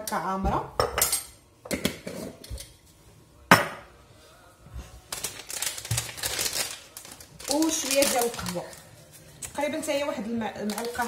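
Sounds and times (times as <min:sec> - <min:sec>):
packet crinkling and rustling: 0:05.1 - 0:10.0, 0:10.6 - 0:11.0.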